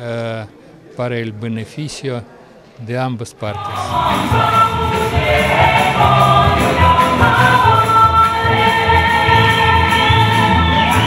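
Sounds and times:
men and women singing in chorus: 0:03.5 - 0:11.0.

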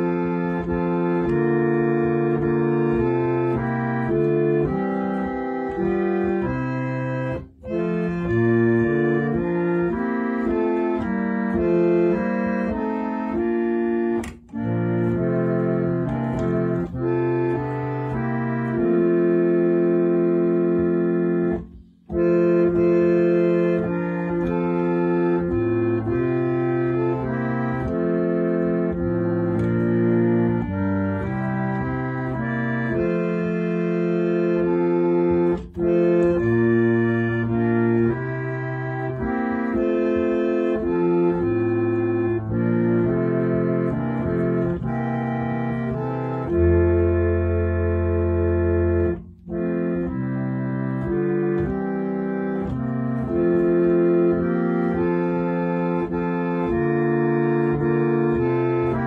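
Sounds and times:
reed organ playing hymn chords: 0:00.0 - 0:59.0.

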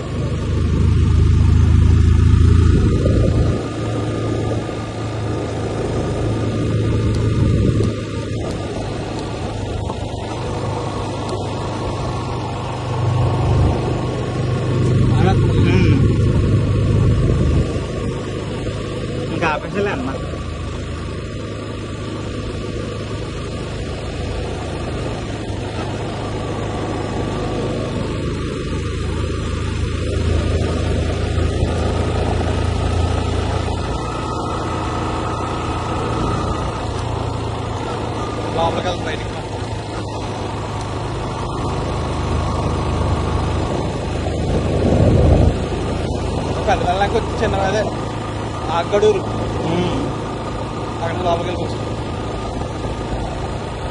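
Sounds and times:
vehicle engine rumble and road noise: 0:00.0 - 0:53.9.

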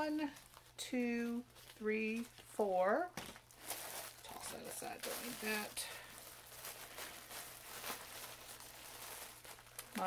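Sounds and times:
paper bands rustling: 0:00.0 - 0:10.0
plastic bag crinkling: 0:00.1 - 0:02.5, 0:03.1 - 0:10.0.

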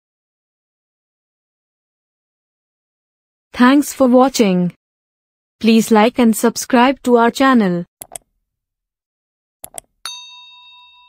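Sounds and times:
quick clicks: 0:08.0 - 0:08.3, 0:09.6 - 0:09.9
bright bell ding: 0:10.1 - 0:11.0.

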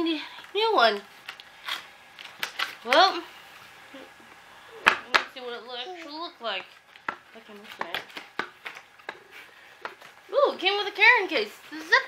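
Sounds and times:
woman speaking: 0:00.0 - 0:01.1, 0:02.8 - 0:03.3, 0:05.0 - 0:06.7, 0:07.3 - 0:08.1, 0:10.3 - 0:12.0.

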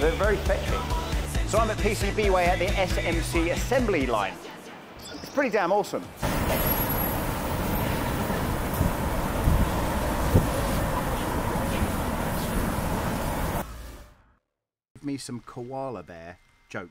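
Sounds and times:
rumble of passing cars: 0:06.2 - 0:14.0
bus passing: 0:06.2 - 0:14.2.

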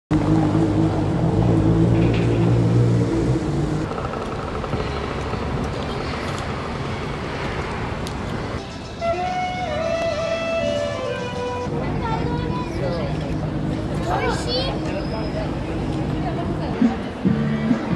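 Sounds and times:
passing traffic: 0:00.1 - 0:17.9.

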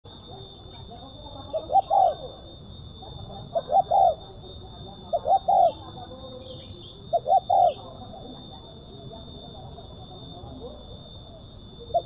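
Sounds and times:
dove cooing: 0:01.4 - 0:08.3, 0:11.8 - 0:12.0.

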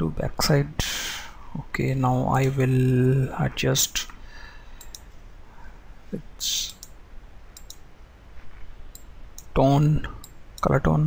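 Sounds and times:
low background hum: 0:00.0 - 0:11.0
computer mouse clicks: 0:04.8 - 0:05.1, 0:07.6 - 0:07.8.

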